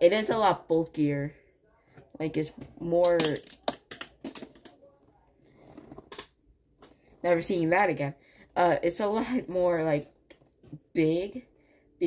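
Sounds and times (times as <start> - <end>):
plastic toy pieces clicking: 3.0 - 4.7.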